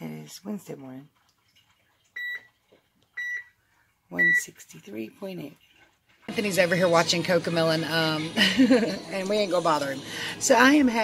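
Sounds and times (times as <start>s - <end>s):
digital scale beeping: 2.2s - 2.5s, 4.2s - 4.5s.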